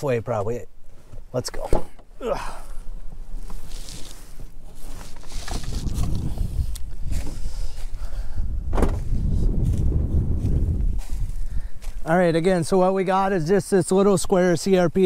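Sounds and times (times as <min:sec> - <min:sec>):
footsteps through dry grass: 0:02.8 - 0:13.1
wind rumbling on microphone: 0:03.1 - 0:12.1.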